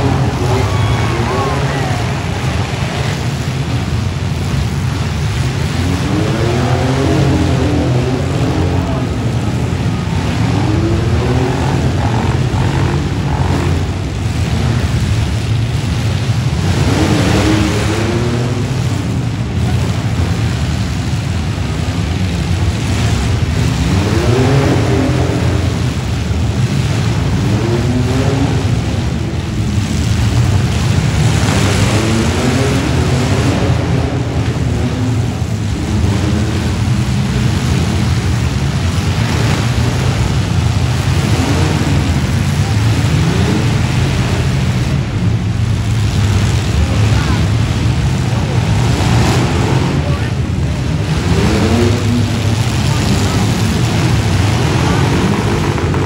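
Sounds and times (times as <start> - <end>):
vehicle engines revving: 0.0 - 56.0.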